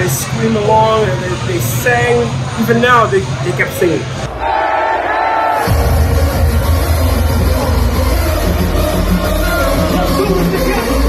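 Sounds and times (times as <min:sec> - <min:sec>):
hardcore electronic music: 0:00.0 - 0:04.3, 0:05.5 - 0:11.0
crowd: 0:00.0 - 0:11.0
heavy deep bass beat: 0:05.6 - 0:11.0.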